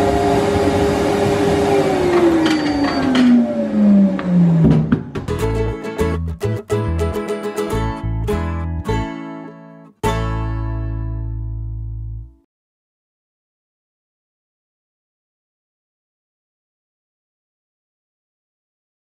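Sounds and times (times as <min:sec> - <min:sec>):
music with plucked guitar: 0:05.2 - 0:12.4.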